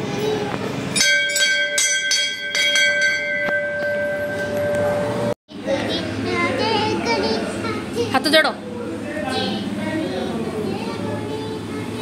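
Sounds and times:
temple bell ringing: 0.9s - 5.4s.

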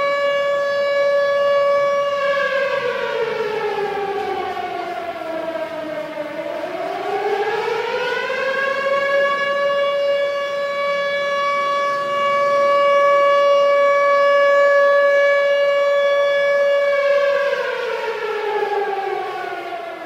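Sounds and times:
air-raid siren: 0.0s - 20.0s.

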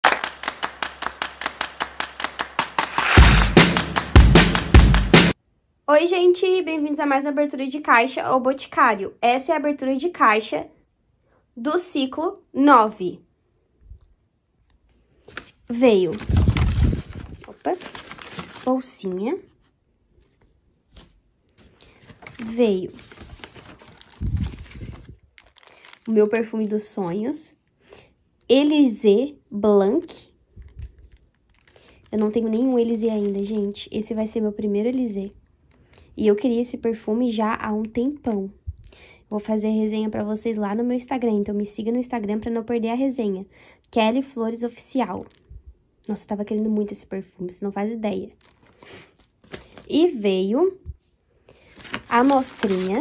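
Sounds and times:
rhythmic clapping beat: 0.0s - 5.4s
paper bag rustling: 15.3s - 19.2s, 20.9s - 26.7s, 31.3s - 34.2s, 48.4s - 49.9s, 51.6s - 53.0s.

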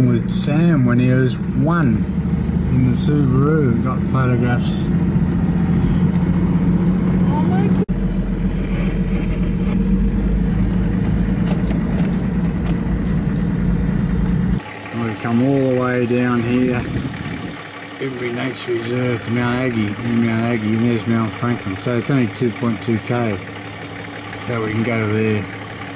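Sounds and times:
man speaking outdoors: 0.0s - 5.0s, 14.8s - 17.2s, 17.8s - 23.6s, 24.3s - 25.7s
car engine and road drone: 0.0s - 25.9s.

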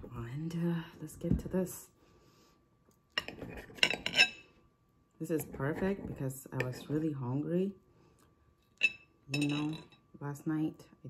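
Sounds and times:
cutlery clinking on a plate: 8.8s - 9.9s.

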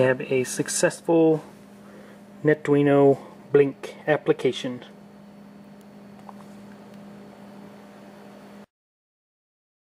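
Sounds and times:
steady low hum: 0.0s - 8.7s.

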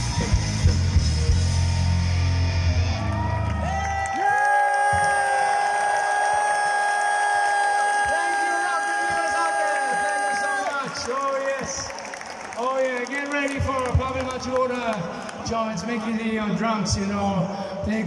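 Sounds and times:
bass and drums: 0.0s - 4.0s.

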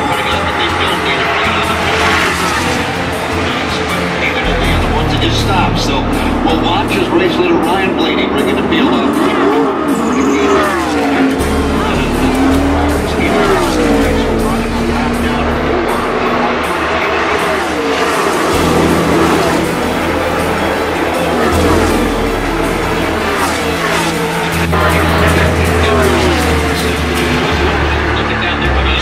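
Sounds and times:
race car engines passing: 0.0s - 29.0s.

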